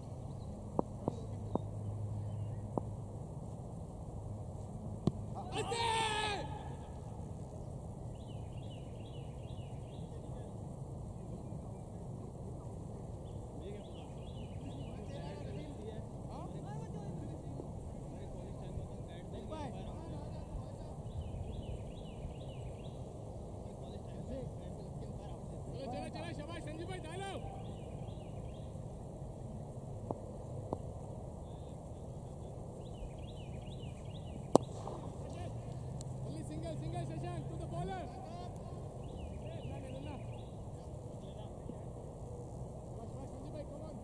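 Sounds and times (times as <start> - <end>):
birds chirping: 0.0 - 3.1, 5.1 - 44.0
cricket bat striking ball: 34.4 - 35.6.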